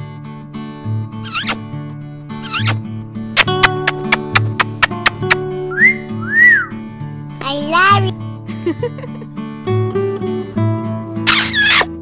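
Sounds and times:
plucked guitar notes: 0:01.1 - 0:12.0
whistled glides: 0:05.7 - 0:06.8.

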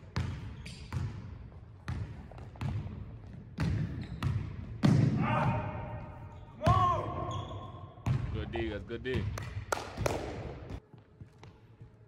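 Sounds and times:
basketball bouncing on hardwood floor: 0:01.9 - 0:05.1, 0:08.0 - 0:08.3.

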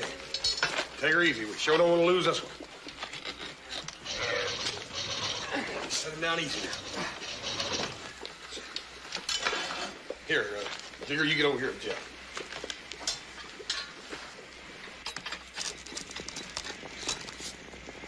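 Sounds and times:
chain hoist ratcheting clicks: 0:03.2 - 0:05.6, 0:06.4 - 0:08.0.

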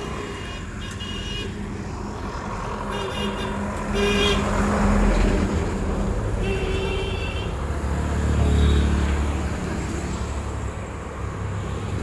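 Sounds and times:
traffic engine rumble: 0:00.0 - 0:12.0
vehicle horn toot: 0:03.0 - 0:04.5.

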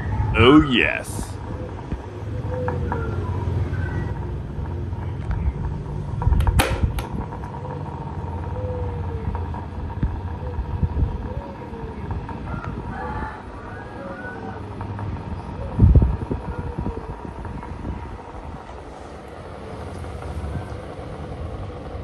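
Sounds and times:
electric fans whirring: 0:00.0 - 0:22.0
sharp clack: 0:06.4 - 0:07.2.

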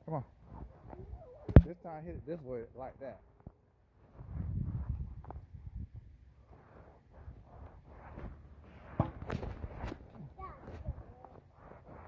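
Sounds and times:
plastic bat hitting ball: 0:01.5 - 0:01.8, 0:08.9 - 0:09.5
wind and handling rumble: 0:03.4 - 0:12.0.

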